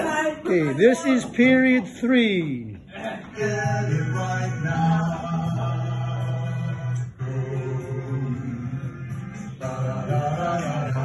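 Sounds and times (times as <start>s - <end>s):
music: 2.7s - 11.0s
students singing in unison: 3.4s - 11.0s.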